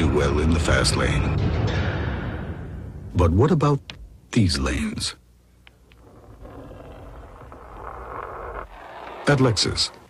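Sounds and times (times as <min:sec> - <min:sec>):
steel ball rolling on car body: 0:05.8 - 0:10.0.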